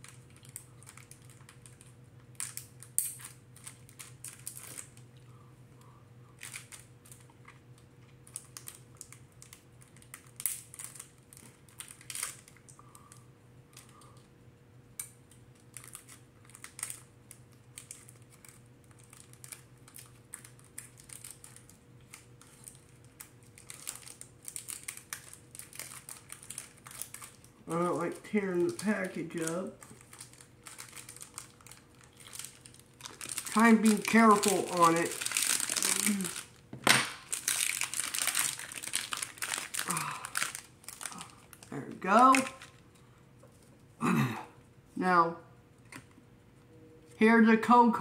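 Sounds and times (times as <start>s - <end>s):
wrapper crinkling and tearing: 0.0s - 5.2s, 6.4s - 12.8s, 15.3s - 42.9s.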